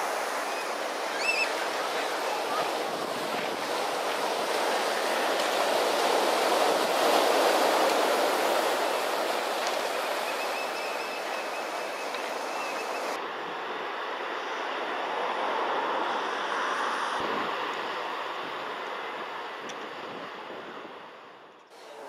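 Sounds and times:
ocean surf on rocky shore: 0:00.0 - 0:21.1.

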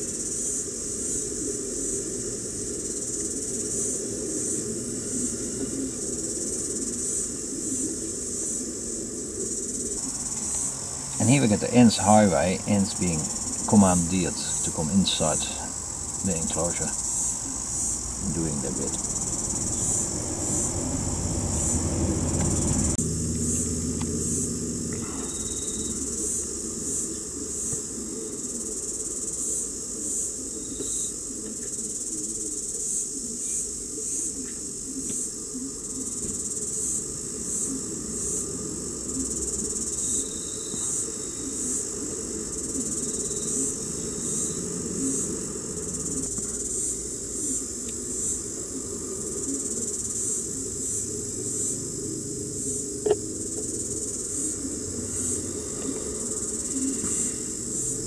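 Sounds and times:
insect chirping: 0:00.0 - 0:58.0
low hum: 0:03.4 - 0:28.6.

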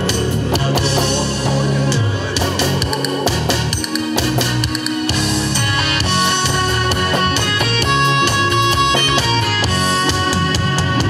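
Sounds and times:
band playing trot song: 0:00.0 - 0:11.0.

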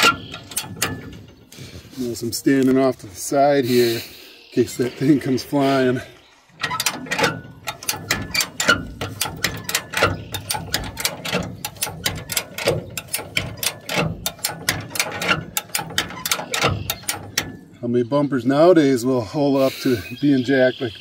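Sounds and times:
jack ratchet clicking: 0:00.0 - 0:01.6, 0:06.5 - 0:17.8.

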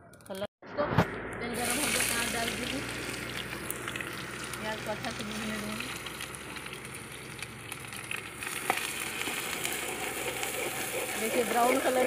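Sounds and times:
onions sizzling in hot oil: 0:01.6 - 0:12.0.

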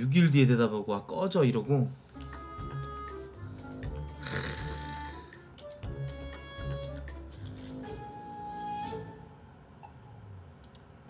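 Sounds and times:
soft background music: 0:01.6 - 0:10.2
man's snorting laugh: 0:04.2 - 0:04.9.

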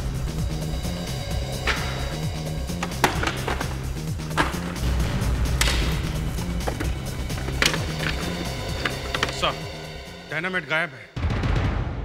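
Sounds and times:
wooden crate lids knocking: 0:02.7 - 0:09.5
tense score with pulsing bass: 0:03.7 - 0:10.3.

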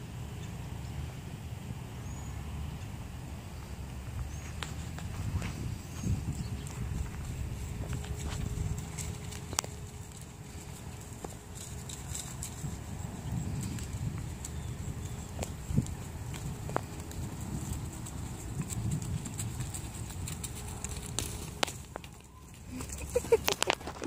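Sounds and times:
horse hoofbeats on grass: 0:03.6 - 0:24.0.

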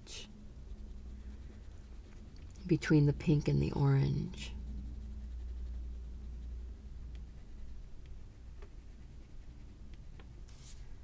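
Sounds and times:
pencil scratching on card: 0:00.2 - 0:11.0.

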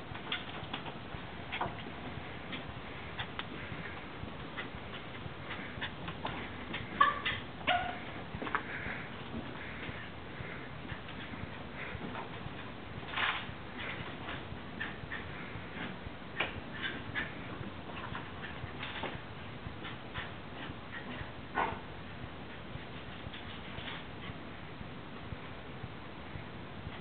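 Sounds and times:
dogs yipping and whimpering: 0:06.7 - 0:08.2.

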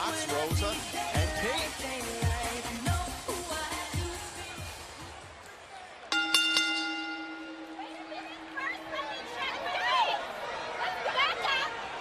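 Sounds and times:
ring bell struck and ringing: 0:06.1 - 0:09.0.

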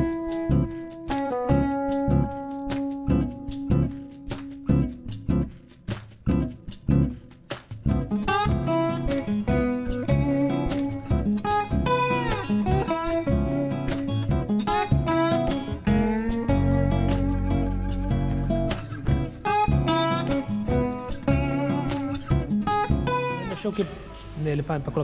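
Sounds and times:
acoustic guitar music: 0:00.0 - 0:25.0.

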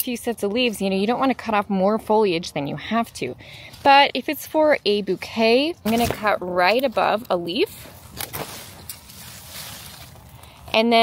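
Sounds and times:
leafy stem rustling: 0:03.6 - 0:10.9.

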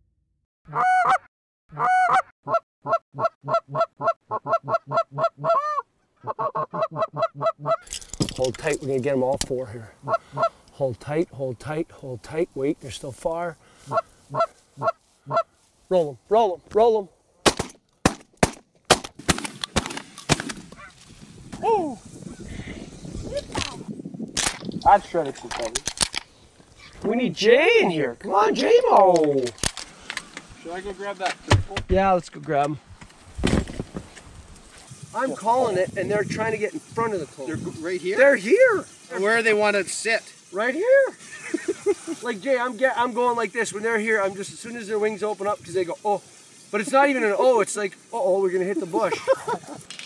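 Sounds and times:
goose call honks: 0:00.7 - 0:07.9, 0:10.0 - 0:10.6, 0:13.9 - 0:15.5
sharp crack: 0:17.4 - 0:20.8, 0:23.4 - 0:26.3
shotgun handling clicks: 0:25.4 - 0:26.3, 0:29.2 - 0:30.5.

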